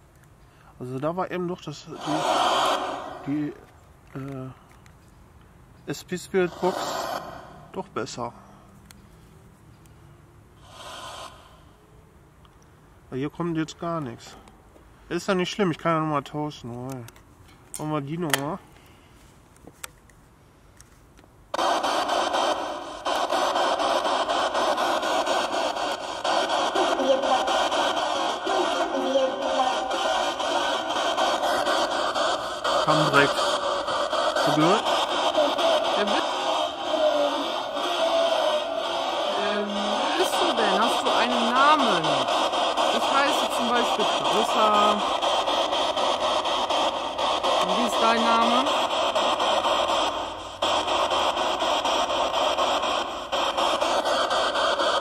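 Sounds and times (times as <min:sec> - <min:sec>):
radio static hiss: 0:01.7 - 0:04.4, 0:06.0 - 0:08.0, 0:21.6 - 0:55.0
snatches of voices: 0:21.6 - 0:55.0.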